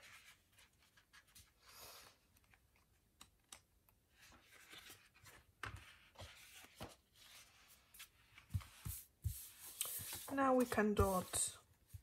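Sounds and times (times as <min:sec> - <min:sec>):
paper pages rustling: 0:04.1 - 0:12.0.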